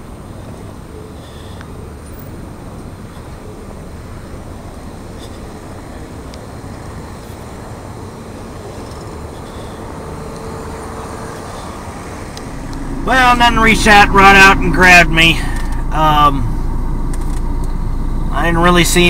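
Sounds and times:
faint hum: 0:00.0 - 0:19.0
car rumble from inside: 0:09.9 - 0:19.0.

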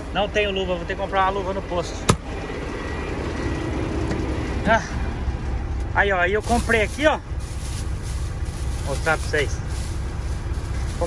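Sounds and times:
truck diesel engine idling: 0:00.0 - 0:11.0.

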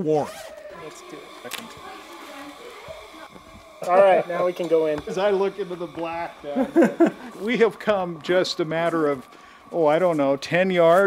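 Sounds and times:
faint gas hiss: 0:00.9 - 0:11.0
handling ticks: 0:01.0 - 0:03.7
man's voice: 0:03.8 - 0:11.0.

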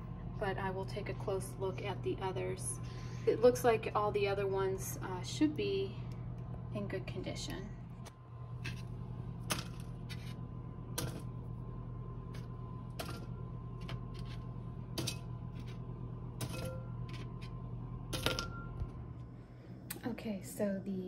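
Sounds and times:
low hum: 0:00.0 - 0:21.0.

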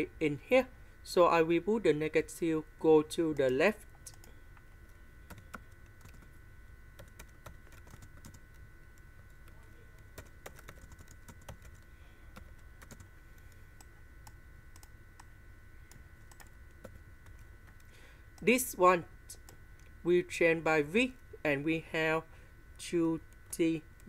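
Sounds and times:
faint electrical whine and hum: 0:00.0 - 0:24.0
computer keyboard typing: 0:05.3 - 0:06.3, 0:07.0 - 0:15.3, 0:15.9 - 0:18.5.

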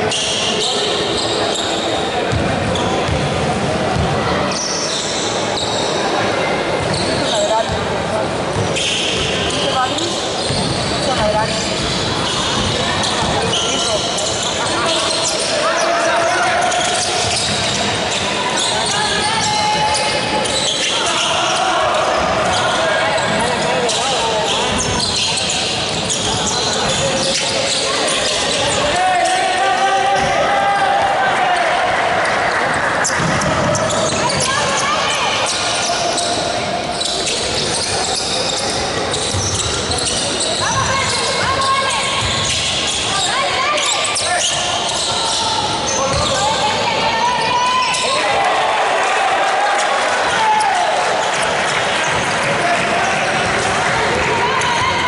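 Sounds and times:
people shouting in a hall: 0:00.0 - 0:55.0.

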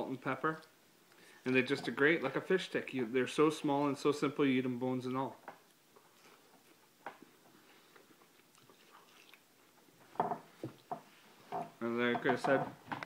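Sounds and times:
man chewing food: 0:05.6 - 0:11.6
faint chewing clicks: 0:07.9 - 0:09.8.

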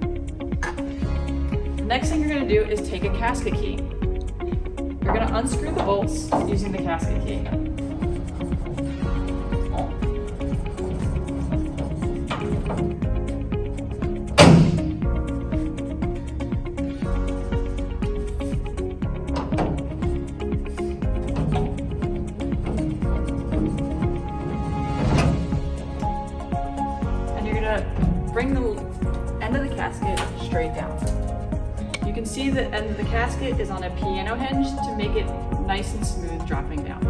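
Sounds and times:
background music with steady beat: 0:00.0 - 0:37.0
metal panel knocking and clattering: 0:11.2 - 0:13.0, 0:19.3 - 0:20.2, 0:21.1 - 0:25.5.

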